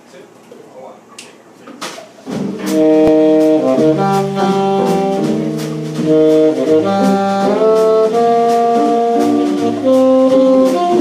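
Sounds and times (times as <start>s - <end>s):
bass and drums: 1.8s - 11.0s
tenor saxophone held notes: 2.6s - 11.0s.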